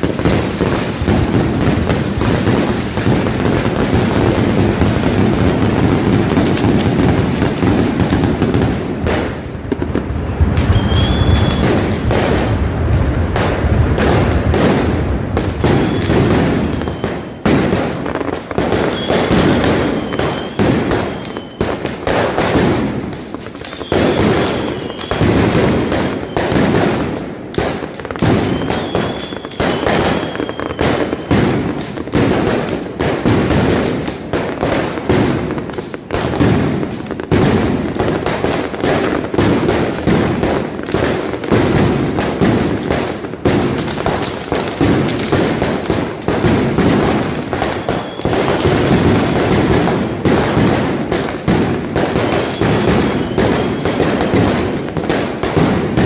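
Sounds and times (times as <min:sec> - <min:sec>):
firecrackers banging rapidly: 0:00.0 - 0:56.0
faint high whistling tone: 0:10.6 - 0:11.6, 0:15.8 - 0:16.1, 0:16.8 - 0:17.4, 0:19.9 - 0:21.6, 0:23.7 - 0:25.2, 0:28.5 - 0:31.3, 0:47.8 - 0:48.3.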